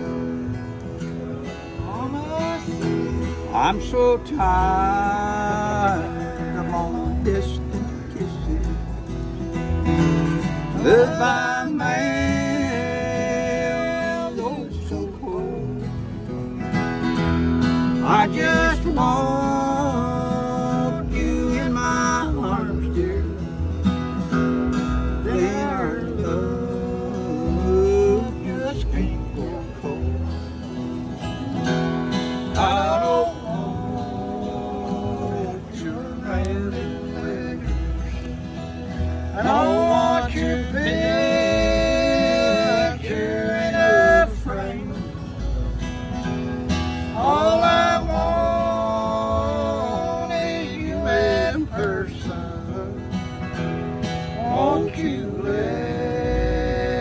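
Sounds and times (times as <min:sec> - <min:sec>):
acoustic guitar strumming: 0:00.0 - 0:57.0
man singing: 0:01.8 - 0:09.0, 0:10.7 - 0:16.1, 0:17.9 - 0:23.8, 0:25.1 - 0:30.3, 0:32.5 - 0:38.2, 0:39.2 - 0:45.3, 0:47.1 - 0:53.2, 0:54.4 - 0:57.0.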